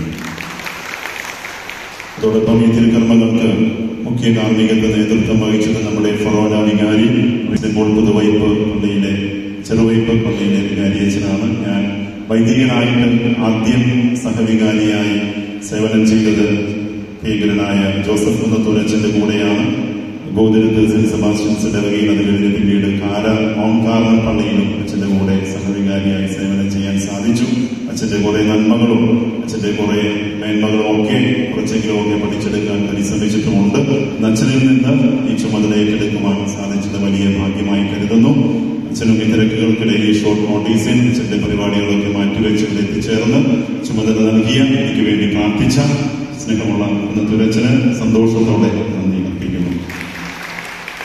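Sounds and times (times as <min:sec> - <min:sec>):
man chanting: 0:02.1 - 0:50.1.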